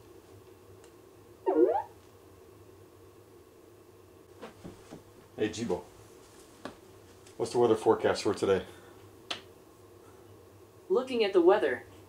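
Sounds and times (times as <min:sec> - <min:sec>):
robot electronic chirp: 0:01.5 - 0:01.9.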